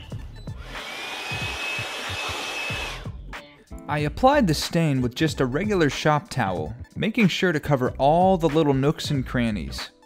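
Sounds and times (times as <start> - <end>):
cordless blower rushing air: 0.5 - 3.1.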